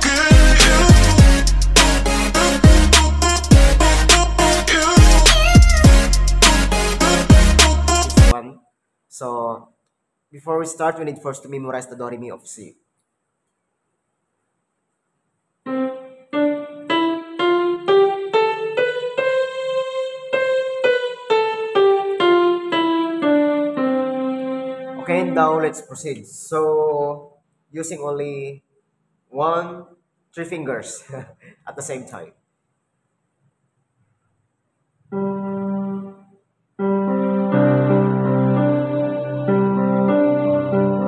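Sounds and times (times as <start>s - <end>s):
keyboard playing a piano scale: 0.0s - 8.4s, 15.7s - 25.8s, 35.1s - 41.0s.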